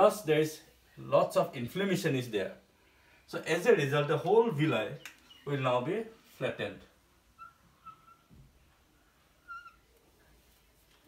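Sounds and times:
marker pen squeaking on whiteboard: 7.4 - 8.4, 9.4 - 10.0.

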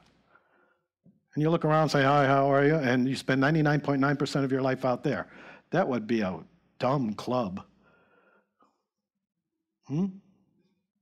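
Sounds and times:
man saying hmm: 9.9 - 10.3.

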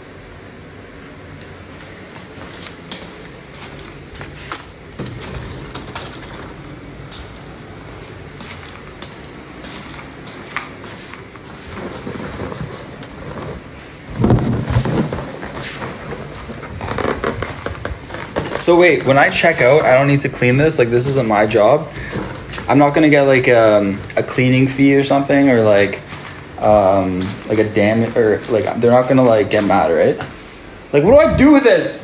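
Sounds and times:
foil balloons crinkling: 11.0 - 30.4
sharp crackles: 14.2 - 24.8
bumps: 31.0 - 31.7.

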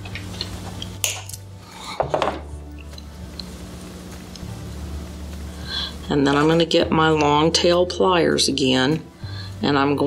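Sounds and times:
low steady hum: 0.0 - 10.0.

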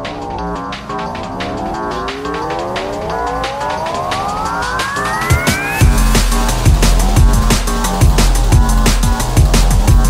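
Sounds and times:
electronic music with beat: 0.0 - 10.0
heavy bass beats: 0.0 - 10.0
rising tone: 0.0 - 10.0.

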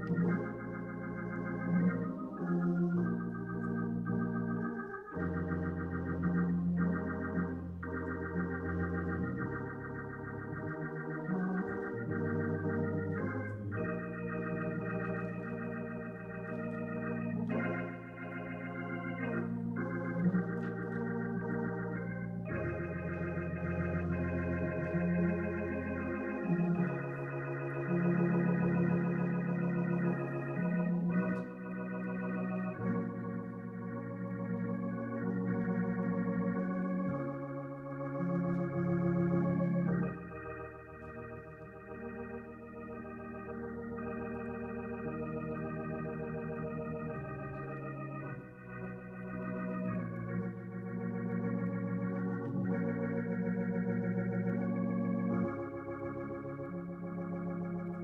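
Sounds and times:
organ playing sustained chords: 0.0 - 58.0.

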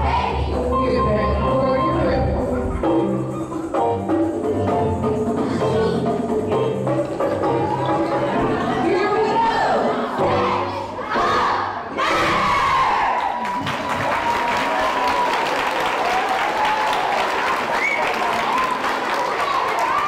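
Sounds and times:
children shouting and cheering: 0.0 - 0.6, 7.2 - 20.0
music: 0.0 - 13.2.

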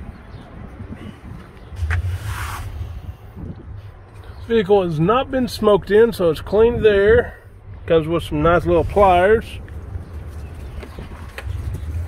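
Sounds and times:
wind rumble on microphone: 0.0 - 4.5, 5.4 - 12.0.

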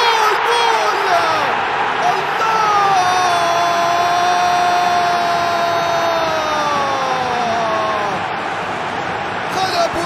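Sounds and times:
commentator shouting: 0.0 - 8.2
stadium crowd roaring: 0.0 - 10.0.

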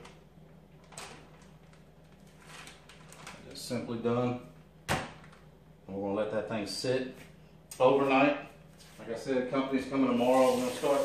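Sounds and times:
low steady hum: 0.0 - 10.8
plastic bag crinkling: 0.8 - 3.6.

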